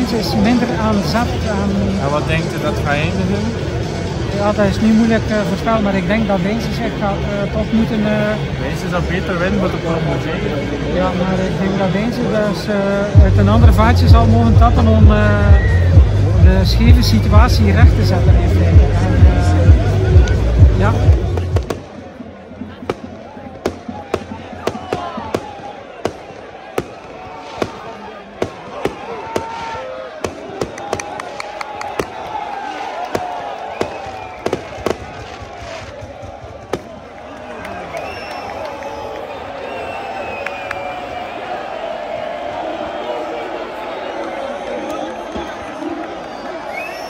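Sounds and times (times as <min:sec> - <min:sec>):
crowd chanting and singing: 0:00.0 - 0:38.2
fireworks banging: 0:21.2 - 0:37.6.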